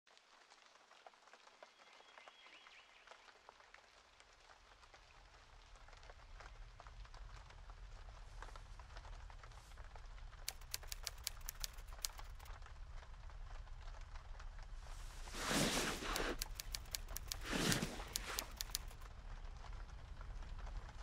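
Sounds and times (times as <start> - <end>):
scattered small clicks: 10.3 - 12.7, 15.2 - 19.2
typewriter key clacks: 10.5 - 12.5.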